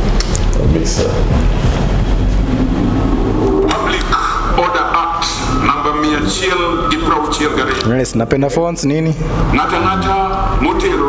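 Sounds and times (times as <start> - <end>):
low steady rumble: 0.0 - 11.0
voices: 2.6 - 11.0.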